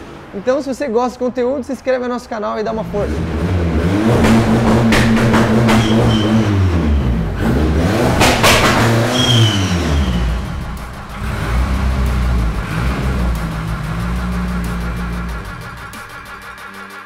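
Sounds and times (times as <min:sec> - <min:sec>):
background music: 0:02.6 - 0:17.0
car engine revving: 0:02.7 - 0:17.0.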